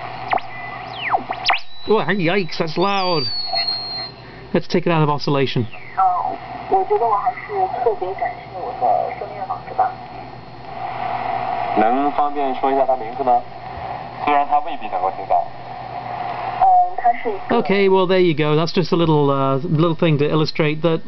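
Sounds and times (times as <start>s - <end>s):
radio hiss: 0.0s - 19.4s
steady whistling tone: 0.3s - 4.3s.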